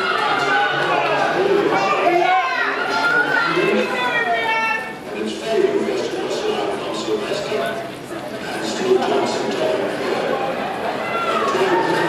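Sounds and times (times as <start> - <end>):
spectators shouting: 0.0 - 5.0, 10.3 - 12.0.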